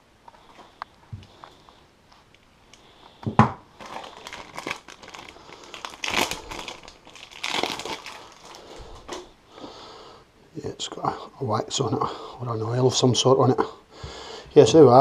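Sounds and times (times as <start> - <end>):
plastic bag crinkling: 3.7 - 9.3.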